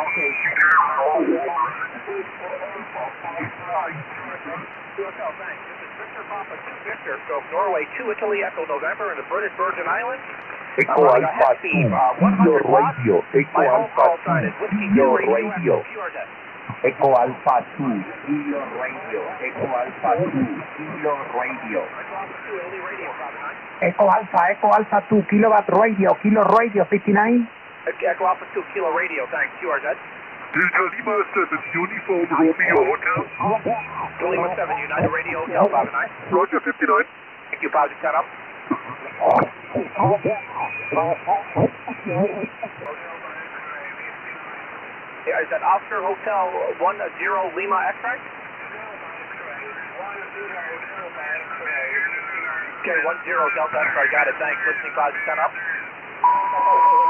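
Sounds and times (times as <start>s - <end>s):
faint radio voices calling: 0.0s - 57.0s
radio band-noise hiss: 0.0s - 57.0s
strong radio voice: 0.0s - 57.0s.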